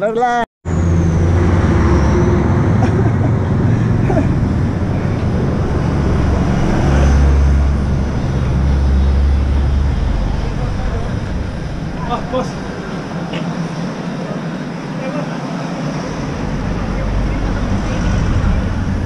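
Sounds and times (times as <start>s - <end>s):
road traffic noise: 0.6s - 19.0s
vehicle engine rumbling: 0.7s - 19.0s.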